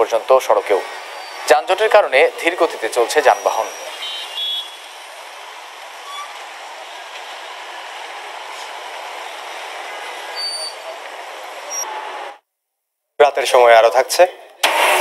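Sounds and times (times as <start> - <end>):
highway traffic with trucks: 0.0 - 12.4.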